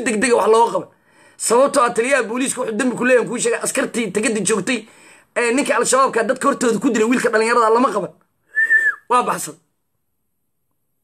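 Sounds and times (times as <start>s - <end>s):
man speaking: 0.0s - 8.2s, 9.0s - 9.7s
high whistled note: 8.5s - 9.1s.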